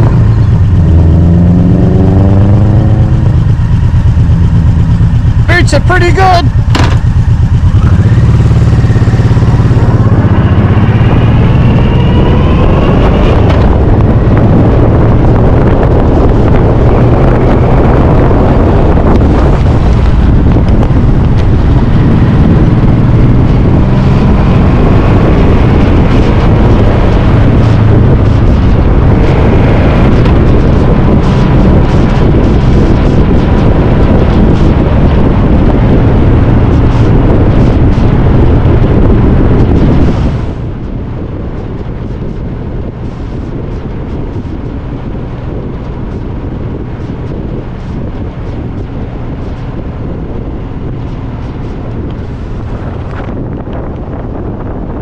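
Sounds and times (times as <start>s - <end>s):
motorcycle engine running: 0.0s - 55.0s
wind rush on microphone: 0.0s - 55.0s.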